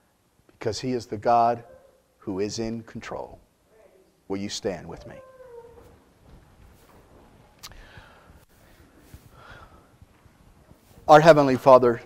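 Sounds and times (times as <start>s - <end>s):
man speaking: 0.6s - 1.6s, 2.3s - 3.4s, 4.3s - 5.2s, 11.1s - 12.0s
low rustling of people standing: 4.6s - 12.0s.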